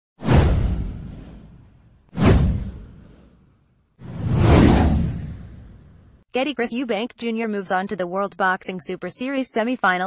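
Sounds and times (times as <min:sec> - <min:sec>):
whoosh: 0:00.2 - 0:06.2.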